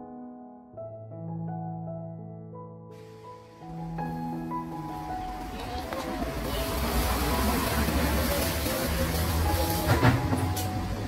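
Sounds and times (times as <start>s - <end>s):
plastic bag rustling: 5.5s - 10.8s.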